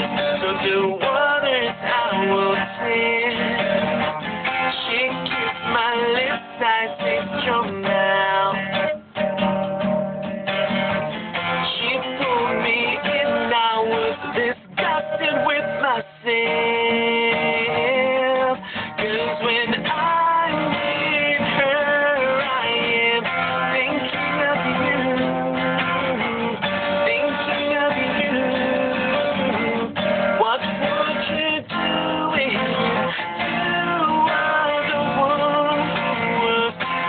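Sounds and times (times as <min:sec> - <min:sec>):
man singing: 0:00.0 - 0:09.2, 0:11.4 - 0:37.0
acoustic guitar strumming: 0:00.0 - 0:37.0.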